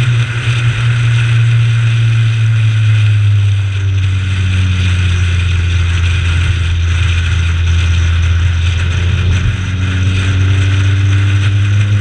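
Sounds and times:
race car engine running hard: 0.0 - 12.0
road and wind noise: 0.0 - 12.0.

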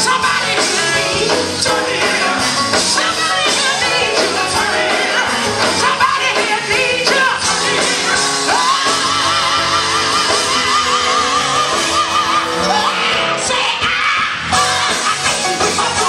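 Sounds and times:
gospel band playing: 0.0 - 16.0
people singing: 0.0 - 16.0.

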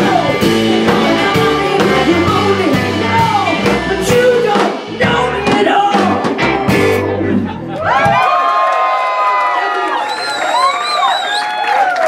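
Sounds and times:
woman singing: 0.0 - 6.2
drum hits: 0.0 - 7.1
live rock band playing: 0.0 - 8.2.

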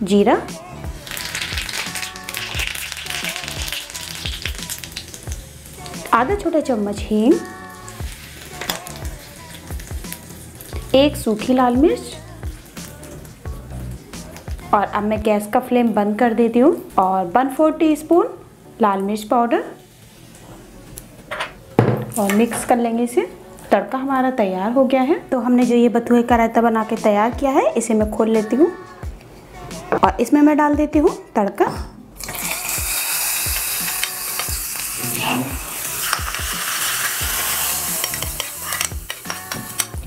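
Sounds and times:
background music with steady beat: 0.0 - 40.0
seeds sizzling in hot oil: 0.7 - 11.4, 32.2 - 40.0.

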